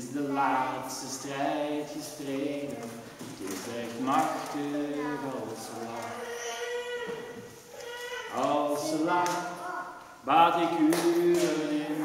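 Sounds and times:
acoustic guitar: 0:00.0 - 0:06.3
person singing: 0:00.0 - 0:06.6, 0:08.3 - 0:12.0.

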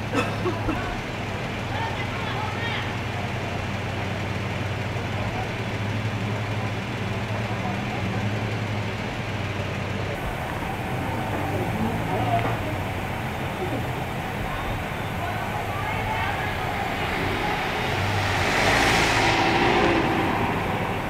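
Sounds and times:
car engine idling: 0:00.0 - 0:21.0
faint voices: 0:04.8 - 0:21.0.

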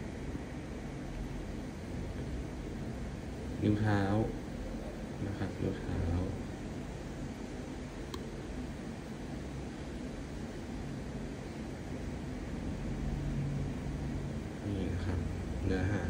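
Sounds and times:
low room hum: 0:00.0 - 0:16.0
faint click: 0:08.1 - 0:08.3.

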